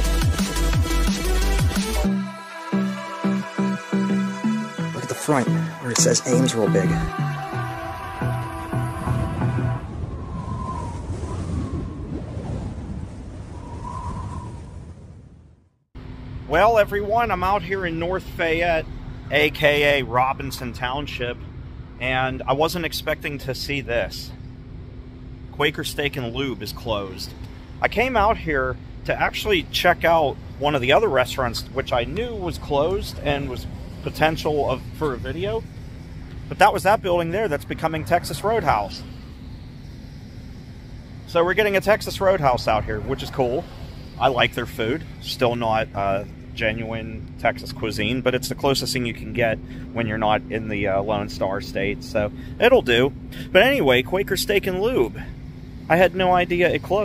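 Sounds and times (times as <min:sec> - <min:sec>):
intro music: 0:00.0 - 0:09.9
low rumble: 0:05.3 - 0:57.0
low hum of road traffic: 0:15.9 - 0:57.0
faint wavering tone: 0:24.2 - 0:57.0.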